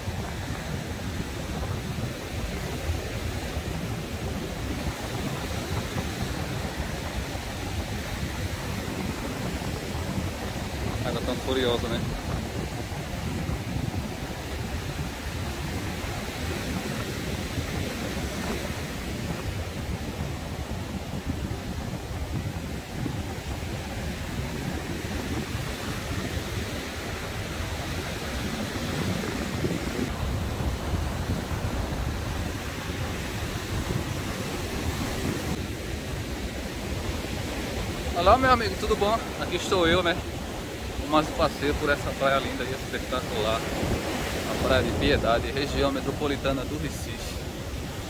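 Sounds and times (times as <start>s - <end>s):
rough surf breaking: 0.0s - 48.0s
wind rumbling on microphone: 0.0s - 48.0s.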